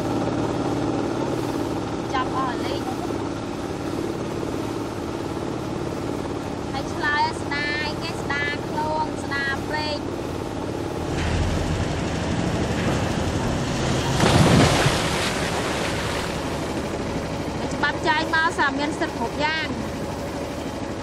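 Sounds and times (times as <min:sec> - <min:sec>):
boat motor drone: 0:00.0 - 0:21.0
woman speaking: 0:02.1 - 0:03.2, 0:06.7 - 0:10.0, 0:17.6 - 0:19.8.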